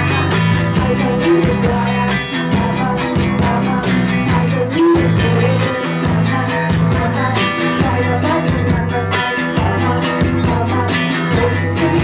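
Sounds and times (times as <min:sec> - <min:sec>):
live rock band playing: 0:00.0 - 0:12.0
woman singing: 0:00.0 - 0:12.0.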